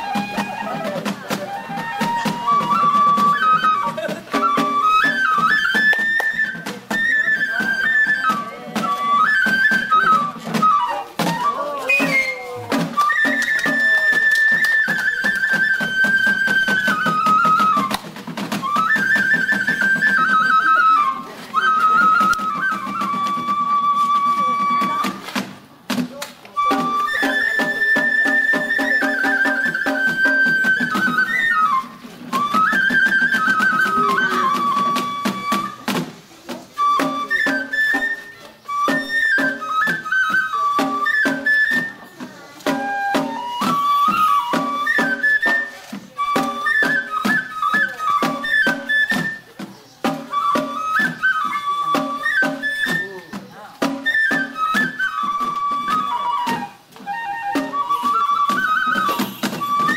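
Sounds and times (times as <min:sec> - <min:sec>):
bamboo flute melody: 0:00.0 - 0:59.9
sharp percussion strikes: 0:58.9 - 0:59.9.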